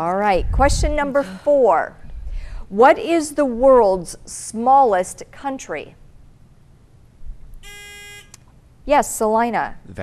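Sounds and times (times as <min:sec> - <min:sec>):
electronic buzzer: 0:07.6 - 0:08.4.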